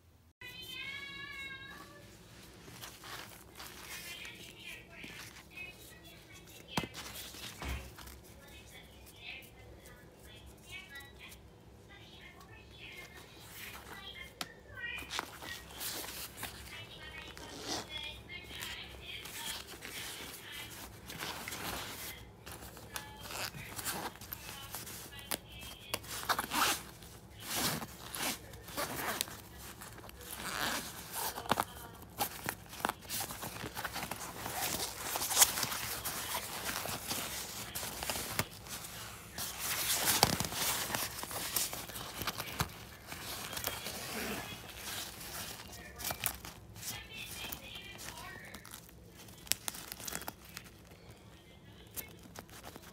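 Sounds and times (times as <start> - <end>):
fabric rustling and scraping: 0.7 - 10.6, 15.0 - 50.9
zipper pulled open: 26.2 - 26.9, 30.2 - 31.7, 43.2 - 45.7.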